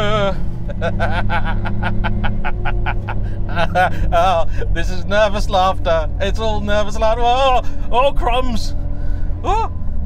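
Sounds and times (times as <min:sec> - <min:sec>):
man laughing nervously: 0:00.0 - 0:04.8
road noise: 0:00.0 - 0:10.0
small engine droning: 0:00.0 - 0:10.0.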